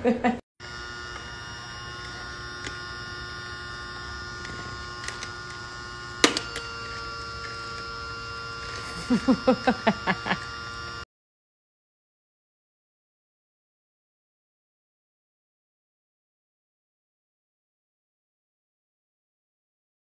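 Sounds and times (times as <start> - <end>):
toy vacuum motor humming: 0.6 - 11.1
burst of laughter: 9.0 - 10.4.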